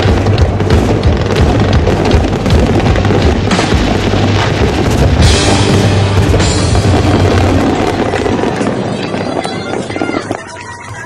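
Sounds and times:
low firework booming: 0.0s - 10.5s
fireworks crackling: 0.0s - 11.0s.

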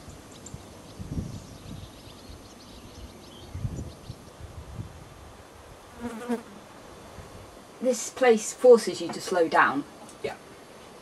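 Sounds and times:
flying insect buzzing: 5.9s - 6.7s.

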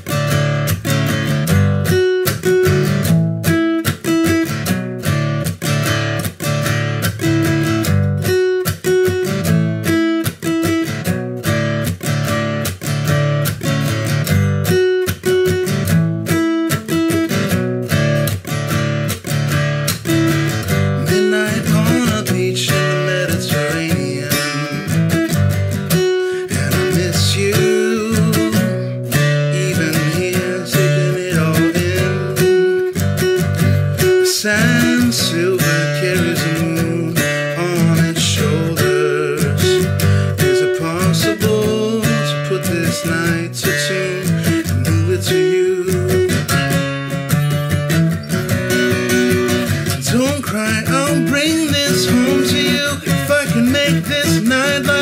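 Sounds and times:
fingerpicked acoustic guitar: 0.0s - 55.0s.

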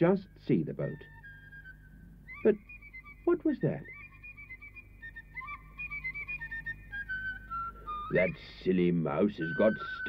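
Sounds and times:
flute playing slow tune: 0.8s - 10.0s.

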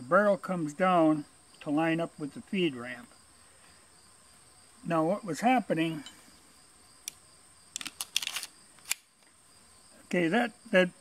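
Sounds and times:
insects trilling: 0.0s - 11.0s
metal clicks of pistol handling: 7.0s - 9.3s.

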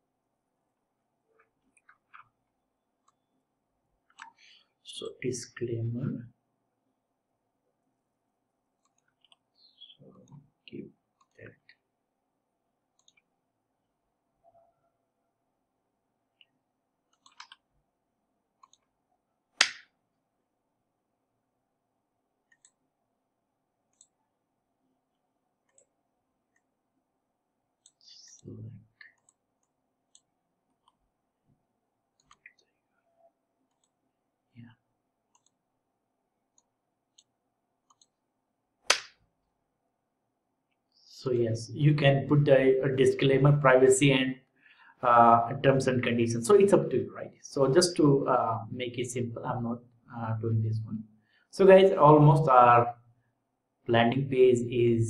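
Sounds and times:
computer mouse clicks: 8.8s - 9.5s, 13.0s - 13.3s, 16.4s - 17.6s, 18.6s - 18.9s, 22.5s - 22.8s, 23.9s - 24.2s, 25.6s - 26.7s, 27.8s - 31.0s, 32.2s - 32.8s, 33.7s - 34.0s, 35.3s - 35.6s, 36.5s - 38.2s.

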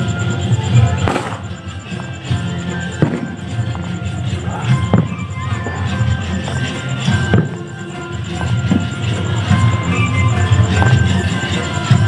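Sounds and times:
music playing: 0.0s - 12.0s
firecracker bang: 0.9s - 5.7s.

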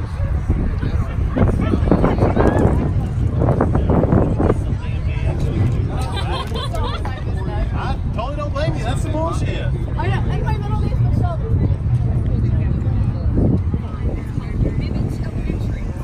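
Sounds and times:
people chattering: 0.0s - 16.0s
steady low rumble: 0.0s - 16.0s.

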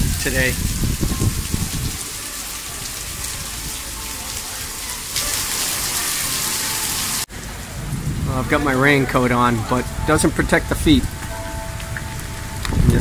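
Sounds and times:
heavy rain on stone paving: 0.0s - 13.0s.

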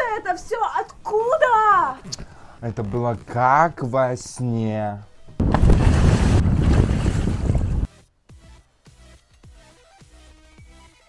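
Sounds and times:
faint electronic music: 7.9s - 11.0s.

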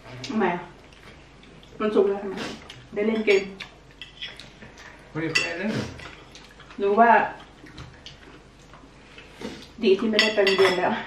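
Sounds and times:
cutlery clinking on plates: 10.1s - 10.9s.

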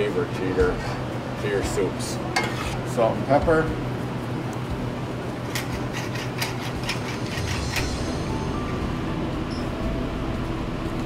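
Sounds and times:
low hum: 7.2s - 11.0s.

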